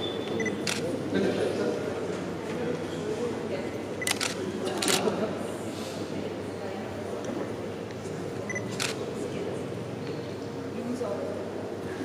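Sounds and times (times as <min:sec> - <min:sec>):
murmur of people talking: 0:00.0 - 0:12.0
camera shutter click: 0:04.0 - 0:05.0, 0:08.7 - 0:09.0.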